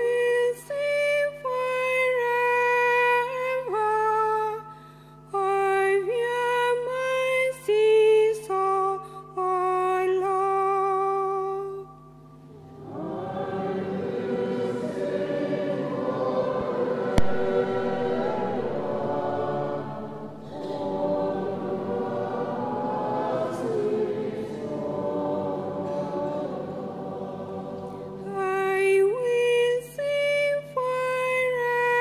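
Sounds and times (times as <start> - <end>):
congregation singing in unison: 12.5 - 30.2
sharp click: 17.2 - 18.0
woman singing solo: 28.3 - 32.0.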